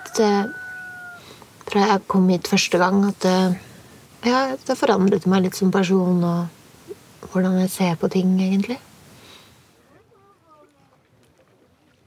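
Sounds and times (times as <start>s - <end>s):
woman speaking: 0.0s - 0.6s, 1.6s - 6.6s, 7.2s - 8.9s.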